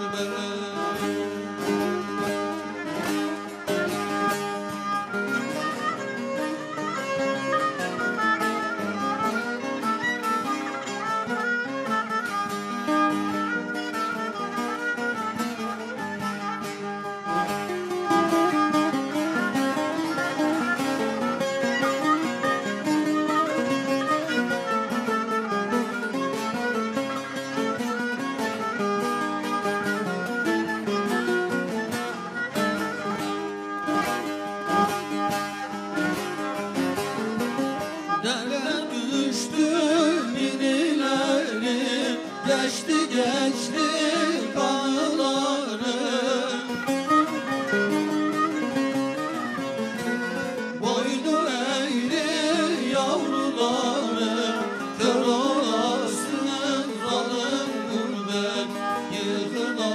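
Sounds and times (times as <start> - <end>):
plucked long-necked lute: 0.0 - 59.9.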